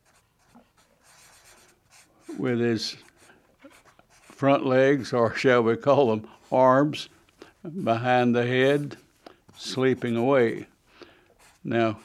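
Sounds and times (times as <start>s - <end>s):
marker scratching on paper: 0.0s - 4.4s, 7.8s - 10.7s, 11.4s - 12.0s.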